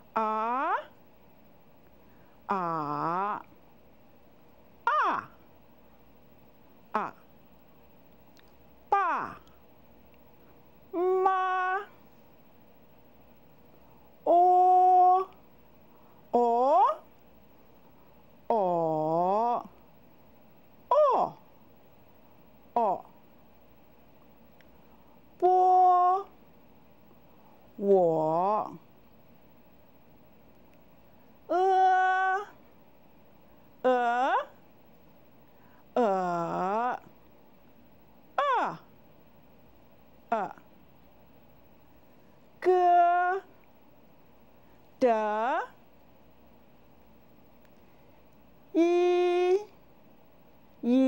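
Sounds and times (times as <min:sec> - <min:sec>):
person holding a vowel: 0:00.0 - 0:01.0, 0:02.5 - 0:03.5, 0:04.8 - 0:05.4, 0:06.9 - 0:07.3, 0:08.9 - 0:09.5, 0:10.9 - 0:12.0, 0:14.2 - 0:15.4, 0:16.4 - 0:17.1, 0:20.9 - 0:21.4, 0:22.8 - 0:23.1, 0:25.4 - 0:26.3, 0:31.5 - 0:32.6, 0:33.8 - 0:34.6, 0:36.0 - 0:37.0, 0:38.4 - 0:38.9, 0:40.3 - 0:40.7, 0:42.6 - 0:43.5, 0:48.8 - 0:49.8
person speaking a syllable: 0:00.0 - 0:01.0, 0:02.5 - 0:03.5, 0:04.8 - 0:05.4, 0:06.9 - 0:07.3, 0:08.9 - 0:09.5, 0:10.9 - 0:12.0, 0:14.2 - 0:15.4, 0:16.3 - 0:17.1, 0:18.5 - 0:19.8, 0:20.9 - 0:21.4, 0:22.8 - 0:23.2, 0:25.4 - 0:26.4, 0:27.8 - 0:28.8, 0:31.5 - 0:32.6, 0:33.8 - 0:34.6, 0:36.0 - 0:37.1, 0:38.4 - 0:38.9, 0:40.3 - 0:40.7, 0:42.6 - 0:43.6, 0:45.0 - 0:45.8, 0:48.7 - 0:49.8.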